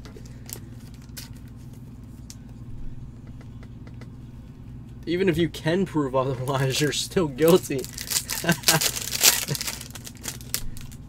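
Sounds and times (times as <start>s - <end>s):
trading cards clicking and rustling: 0.0s - 2.4s, 6.3s - 11.0s
steady low hum: 0.0s - 11.0s.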